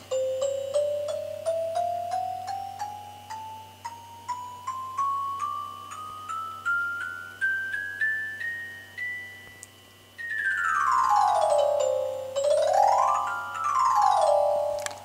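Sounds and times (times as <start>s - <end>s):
laser harp playing notes: 0.0s - 15.0s.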